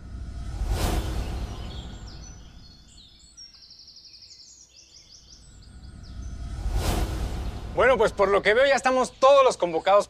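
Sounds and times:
bird chirping: 1.1 - 10.0.

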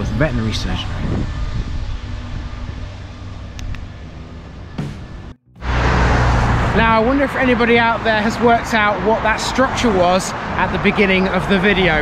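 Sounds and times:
low rumble of traffic: 0.0 - 12.0
car passing: 2.4 - 12.0.

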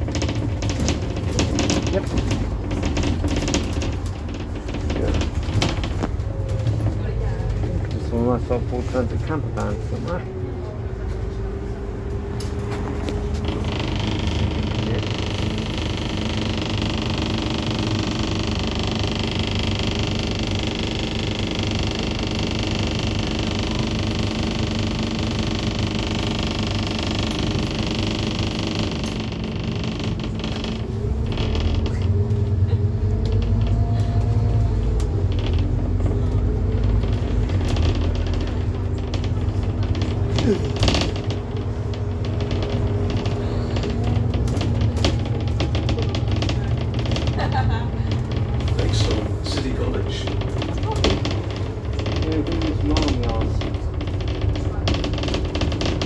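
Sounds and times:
clicks and rattles: 0.0 - 8.1, 24.5 - 56.0
bus diesel engine drone: 0.0 - 56.0.

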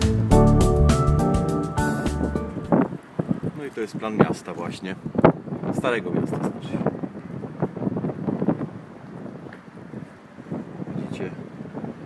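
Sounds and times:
wind buffeting microphone: 2.1 - 12.0.

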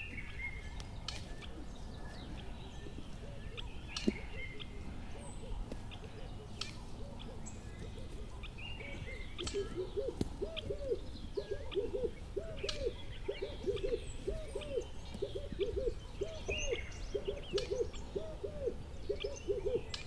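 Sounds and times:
low hooting calls: 0.0 - 20.0.

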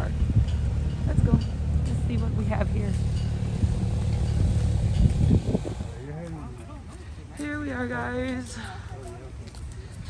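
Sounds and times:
steady low rumble: 0.0 - 8.4.

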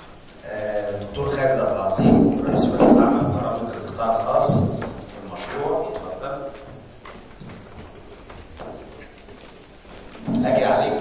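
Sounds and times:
low room murmur: 0.0 - 11.0
man talking: 0.4 - 6.8, 10.2 - 11.0.

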